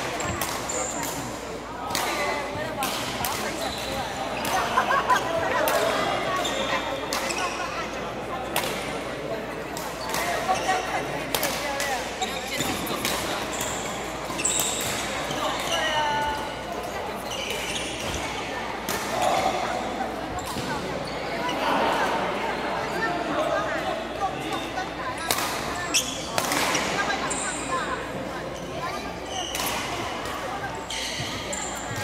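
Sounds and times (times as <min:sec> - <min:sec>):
voices in a hall: 0:00.0 - 0:32.0
rackets hitting shuttlecock: 0:00.1 - 0:04.7
shoes squeaking on court: 0:12.1 - 0:18.5, 0:25.8 - 0:32.0.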